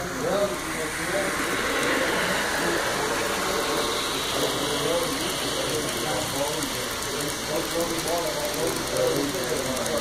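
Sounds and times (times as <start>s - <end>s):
crowd chatter: 0.0s - 10.0s
model train running on track: 0.0s - 10.0s.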